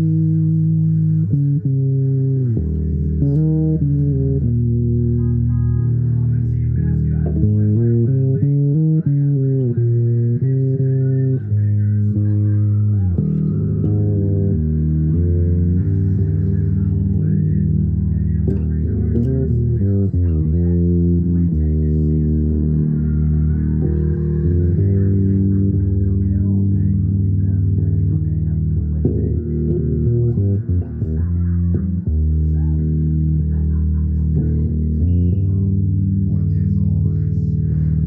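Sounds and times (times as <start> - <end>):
fretless electric bass: 0.0 - 38.0.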